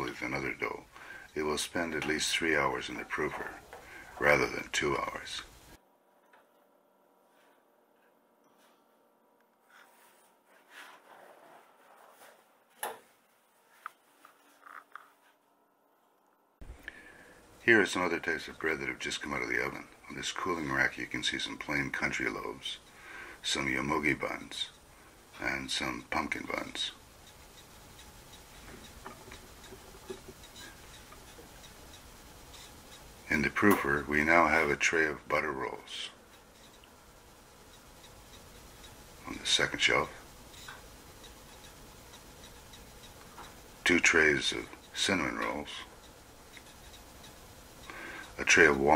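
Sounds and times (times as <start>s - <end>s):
faint regular ticking: 0.0s - 5.8s, 16.6s - 48.9s.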